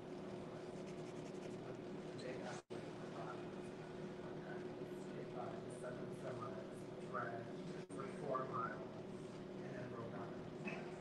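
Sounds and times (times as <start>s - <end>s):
steady room hum: 0.0s - 11.0s
eraser rubbing on paper: 0.6s - 1.6s.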